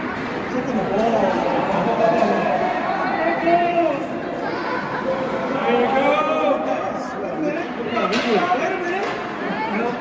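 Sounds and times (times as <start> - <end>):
echoing chatter of people: 0.0 - 10.0.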